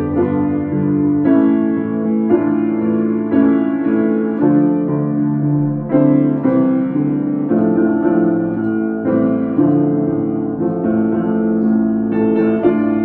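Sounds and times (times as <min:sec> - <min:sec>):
upright piano chords: 0:00.0 - 0:13.0.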